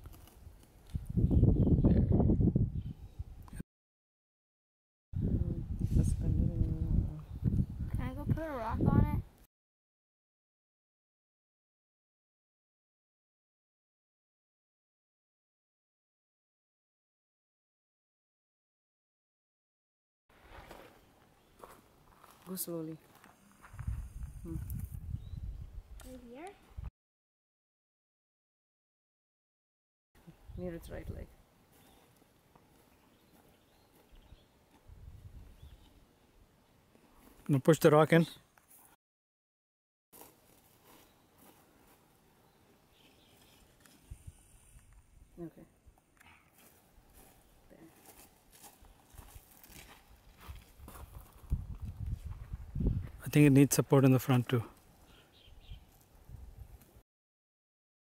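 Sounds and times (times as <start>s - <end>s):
footsteps on stony ground: 20.3s - 24.9s, 31.7s - 34.9s, 40.2s - 42.1s, 46.3s - 53.2s.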